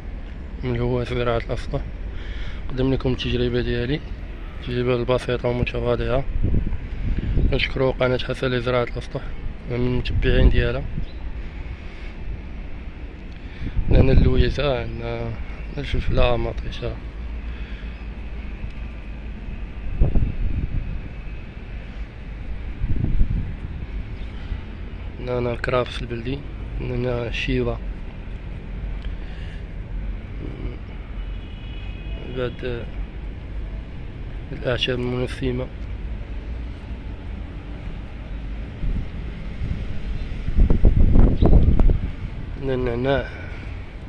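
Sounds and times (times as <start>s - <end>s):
wind buffeting microphone: 5.6s - 8.0s, 9.4s - 11.4s, 13.6s - 14.7s, 19.7s - 24.3s, 38.6s - 44.0s.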